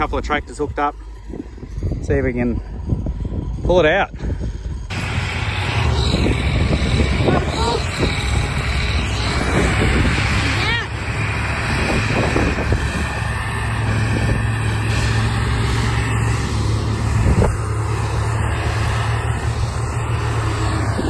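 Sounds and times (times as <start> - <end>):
tractor diesel engine under load: 0.0 - 21.0.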